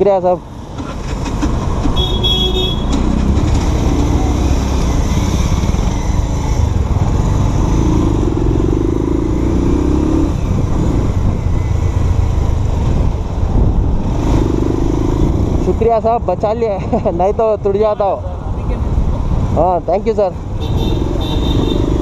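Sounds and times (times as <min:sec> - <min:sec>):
wind noise on microphone: 0:10.1 - 0:16.3.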